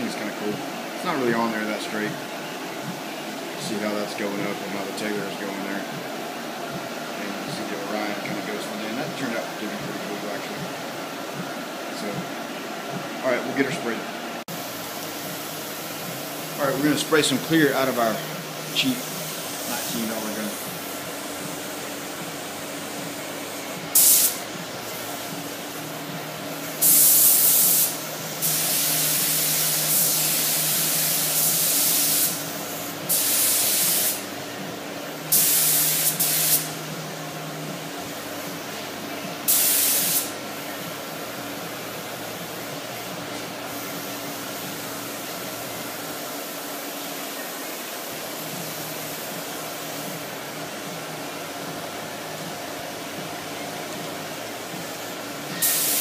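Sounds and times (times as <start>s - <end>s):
steady hum: 0.0s - 56.0s
paint spray gun hissing: 14.6s - 34.4s, 35.2s - 36.9s, 39.4s - 40.5s, 54.9s - 56.0s.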